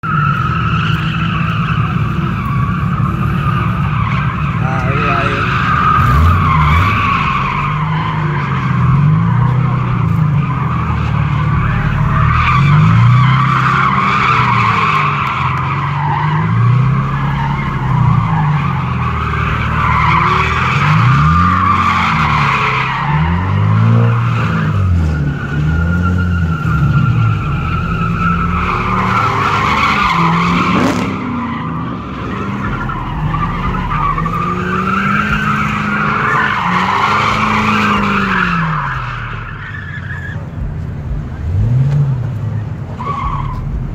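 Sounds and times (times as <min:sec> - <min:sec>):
tyres squealing: 0:00.0 - 0:40.5
car engine revving: 0:00.0 - 0:43.9.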